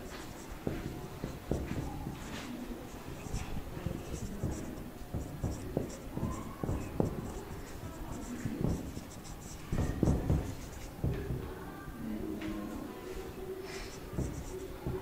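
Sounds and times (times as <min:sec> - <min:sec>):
marker pen writing on whiteboard: 0:00.0 - 0:11.7, 0:12.4 - 0:15.0.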